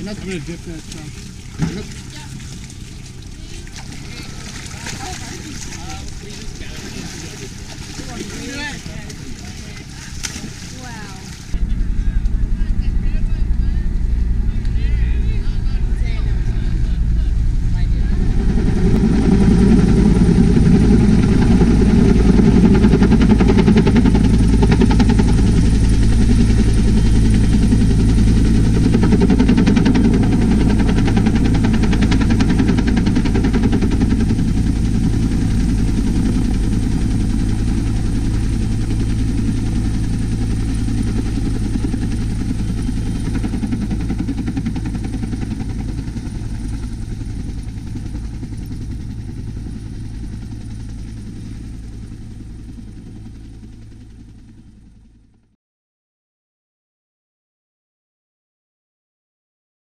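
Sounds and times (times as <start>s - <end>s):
helicopter rotor and engine drone: 0.0s - 55.6s.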